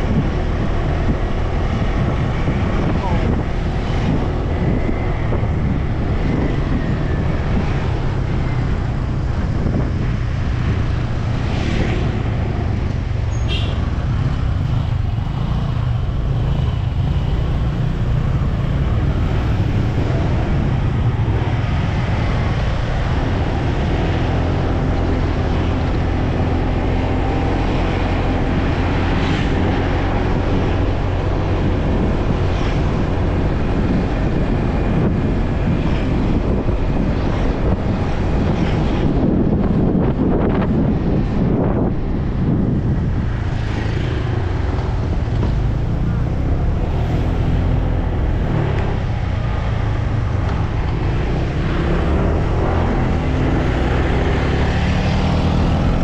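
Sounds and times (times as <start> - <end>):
road noise: 0.0 - 56.0
wind noise: 0.0 - 56.0.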